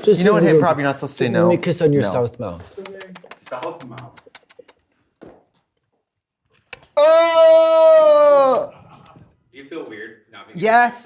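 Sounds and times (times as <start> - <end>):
person shouting oh: 7.0 - 8.7.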